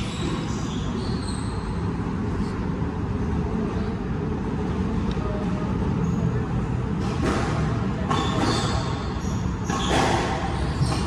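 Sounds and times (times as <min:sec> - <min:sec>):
low rumble of background noise: 0:00.0 - 0:11.0.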